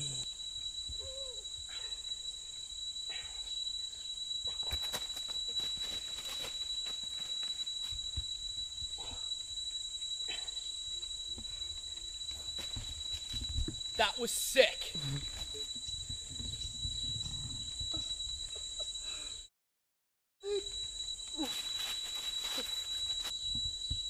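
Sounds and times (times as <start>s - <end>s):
high-pitched insect drone: 0.0s - 19.5s, 20.4s - 24.0s.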